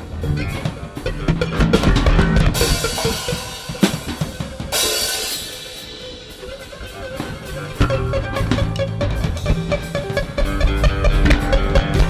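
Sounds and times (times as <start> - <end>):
drum and cymbal strokes: 0.0 - 12.0
plucked bass notes: 0.0 - 12.0.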